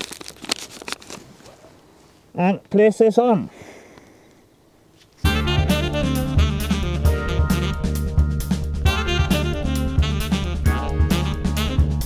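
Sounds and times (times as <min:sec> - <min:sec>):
gloved hands handling plastic: 0:00.0 - 0:02.0.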